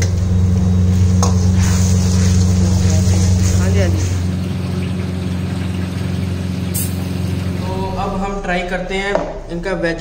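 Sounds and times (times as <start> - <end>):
kitchen equipment hum and rush: 0.0 - 10.0.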